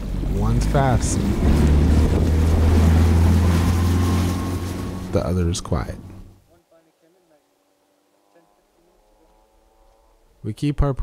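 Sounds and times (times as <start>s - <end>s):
outboard motor hum: 0.0s - 6.4s
water rushing: 0.0s - 6.4s
wind on microphone: 0.2s - 5.2s.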